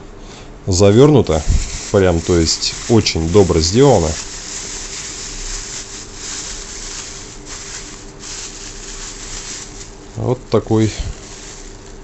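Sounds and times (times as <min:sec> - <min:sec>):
bubble wrap crinkling: 0:01.2 - 0:12.0
plastic bag rustling: 0:01.2 - 0:12.0.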